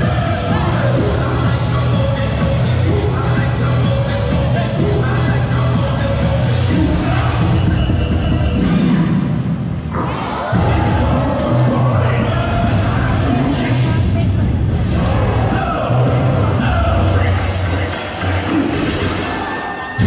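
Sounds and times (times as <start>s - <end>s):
loud dance music with bass beat: 0.0s - 9.5s, 10.5s - 20.0s
crowd cheering: 10.0s - 13.1s, 17.7s - 20.0s.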